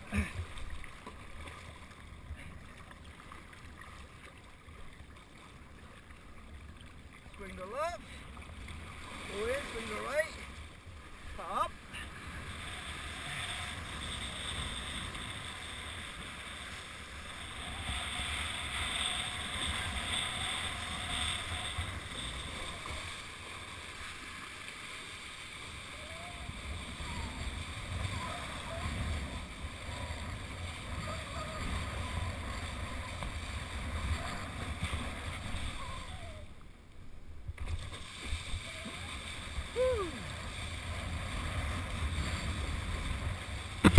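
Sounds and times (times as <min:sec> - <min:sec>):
water rushing under kiteboard: 0:00.0 - 0:43.9.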